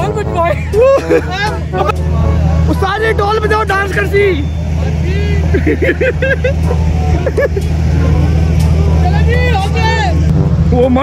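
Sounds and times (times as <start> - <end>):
low engine drone: 0.0 - 11.0
several voices talking: 0.0 - 11.0.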